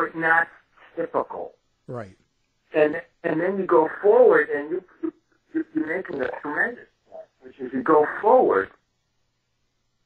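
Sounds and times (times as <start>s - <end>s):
croaky voice speaking: 3.4s - 8.7s.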